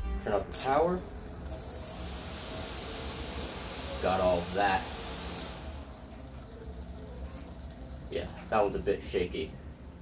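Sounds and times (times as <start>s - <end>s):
drone motors whining: 0.6s - 8.9s.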